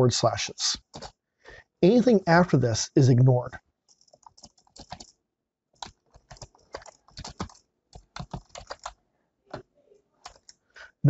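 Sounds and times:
computer keyboard typing: 0.8 - 1.2, 3.9 - 5.2, 5.8 - 10.6.

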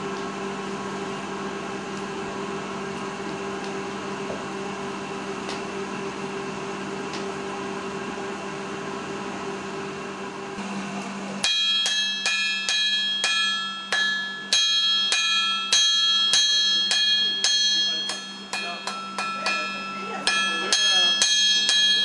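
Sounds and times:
steady low hum: 0.0 - 22.0
hammer striking iron on anvil: 11.4 - 22.0.

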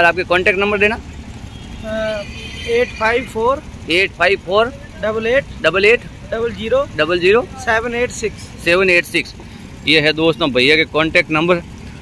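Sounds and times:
man speaking: 0.0 - 1.0, 1.8 - 11.7
low outdoor background noise: 0.0 - 12.0.

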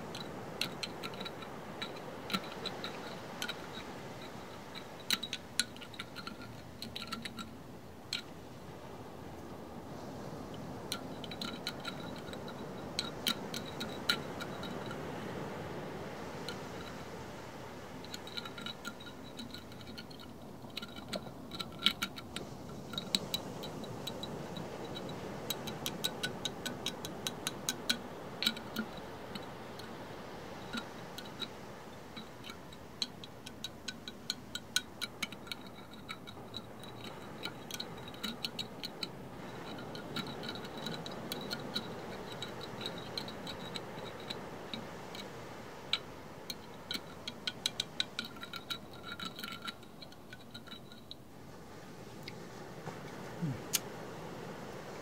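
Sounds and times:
background hiss: 0.0 - 55.0.

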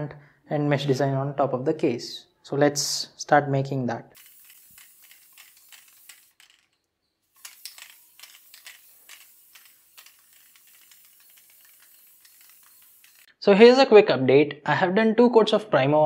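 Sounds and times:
spray paint can hissing: 4.2 - 13.3.

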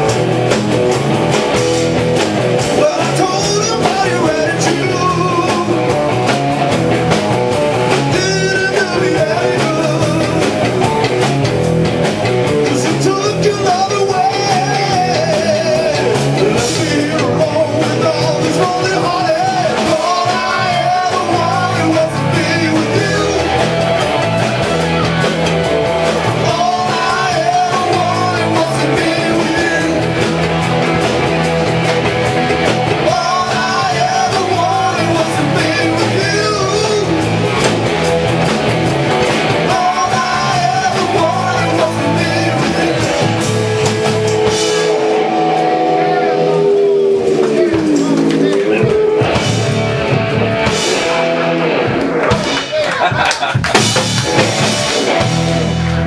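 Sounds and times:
bass guitar: 0.0 - 56.0
drum kit: 0.0 - 56.0
electric guitar: 0.0 - 56.0
man singing lead vocal: 2.6 - 6.1, 7.9 - 10.8, 12.6 - 24.2, 26.2 - 30.5, 32.6 - 37.7, 39.4 - 49.4.

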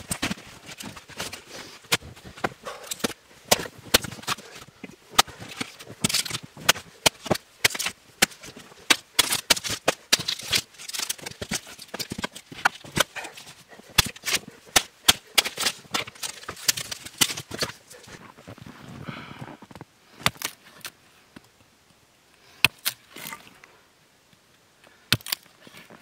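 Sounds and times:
wood cracking: 0.0 - 18.2
hatchet chopping wood: 1.9 - 4.5, 5.1 - 17.8.

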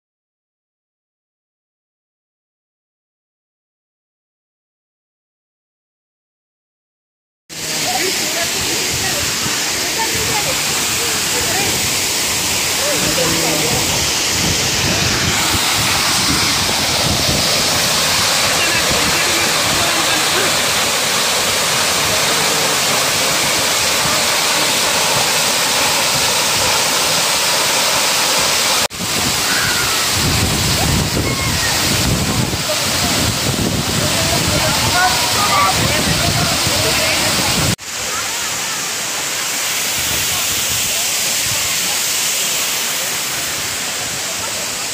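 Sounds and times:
people's voices: 7.5 - 44.9
waterfall rushing: 7.5 - 44.9.

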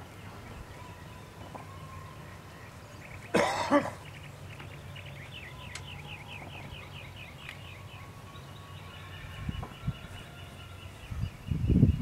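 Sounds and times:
person coughing: 3.3 - 4.0.

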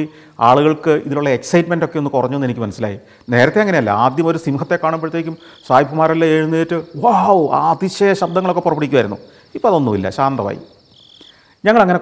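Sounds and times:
person speaking: 0.0 - 10.7
crickets chirping: 0.0 - 12.0.

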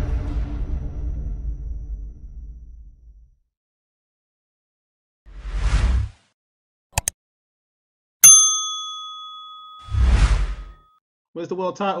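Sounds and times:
bright bell strike: 8.2 - 10.2.

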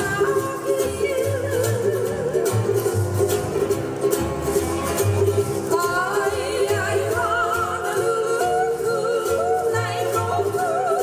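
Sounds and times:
person singing with vibrato: 0.0 - 2.8, 5.7 - 11.0
instrumental accompaniment: 0.0 - 11.0.

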